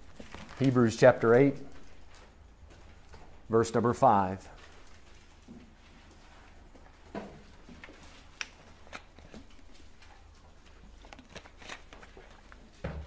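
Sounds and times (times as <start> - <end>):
book pages being leafed through: 0.0 - 0.9, 7.9 - 12.7.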